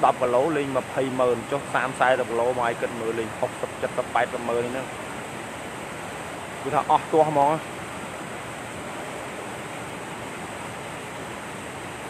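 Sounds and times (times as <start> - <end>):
water rushing from sluice gate: 0.0 - 12.0.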